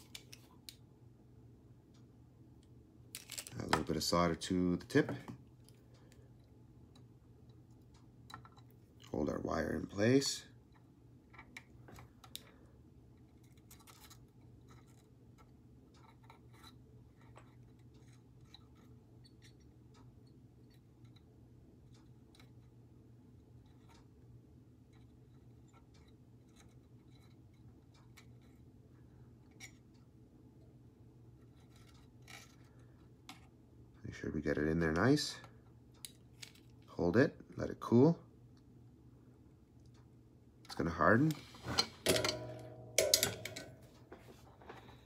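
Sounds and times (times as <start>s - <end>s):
faint low hum: 0.0s - 45.0s
faint clicks and ticks: 23.4s - 24.2s, 24.8s - 30.1s, 35.2s - 37.0s, 39.8s - 41.4s.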